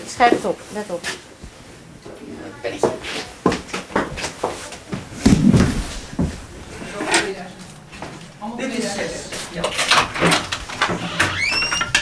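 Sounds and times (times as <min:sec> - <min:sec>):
faint indistinct voices: 0:02.0 - 0:11.3
low thud: 0:05.0 - 0:08.4.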